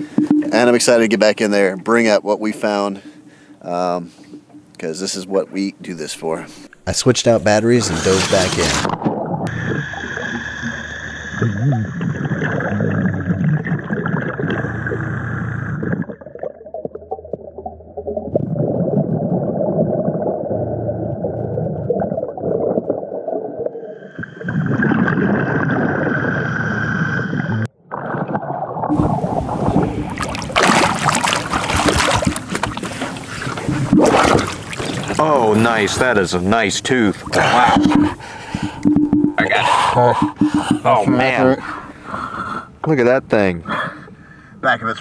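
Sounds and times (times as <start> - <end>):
underwater bubbling and rumble: 0.0 - 4.8, 7.4 - 35.2, 37.0 - 42.8
high underwater whine: 0.0 - 27.7, 28.8 - 36.2, 37.0 - 42.2
water splashing: 6.2 - 42.1.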